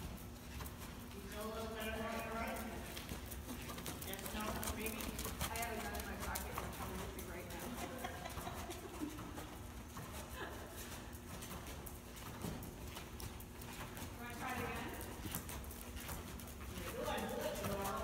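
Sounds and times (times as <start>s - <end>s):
horse hoofbeats on sand: 0.0s - 18.0s.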